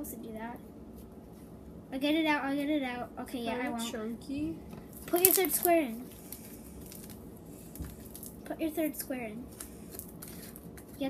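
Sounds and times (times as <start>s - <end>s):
slime squishing and tearing: 5.0s - 8.5s, 9.5s - 11.0s.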